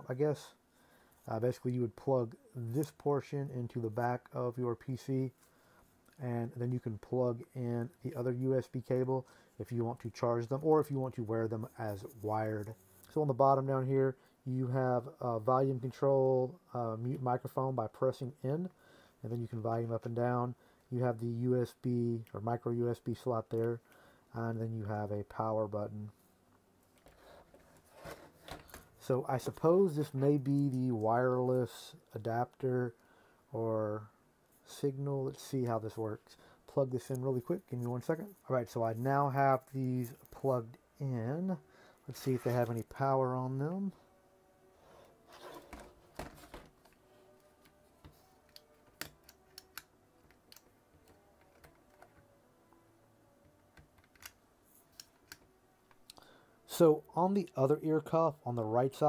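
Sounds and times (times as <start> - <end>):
plastic headset handling rubbing: 26.9 - 29.0, 42.1 - 43.0, 44.8 - 47.0.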